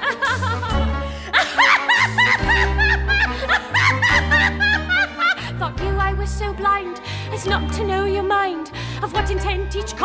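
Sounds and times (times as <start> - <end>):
orchestral show tune accompaniment: 0.0 - 10.0.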